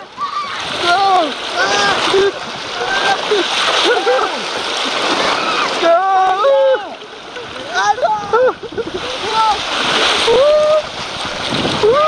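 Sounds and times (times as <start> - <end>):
water rushing down slide: 0.0 - 12.0
riders yelling and whooping: 10.2 - 10.9, 11.8 - 12.0.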